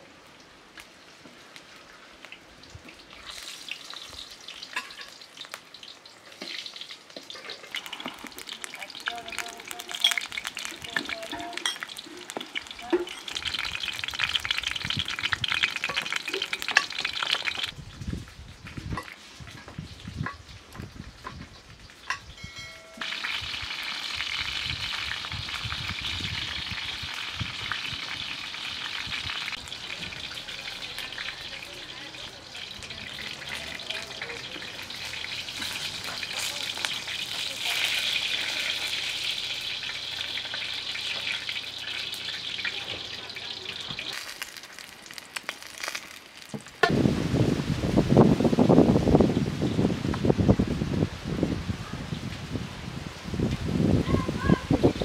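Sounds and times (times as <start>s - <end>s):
food sizzling in hot oil: 0.0s - 51.0s.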